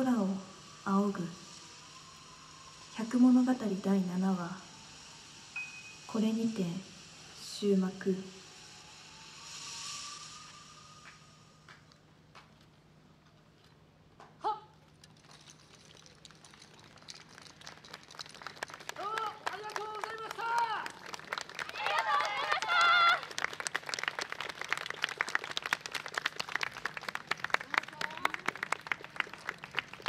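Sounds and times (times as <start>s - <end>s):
audience applause: 16.3s - 30.0s.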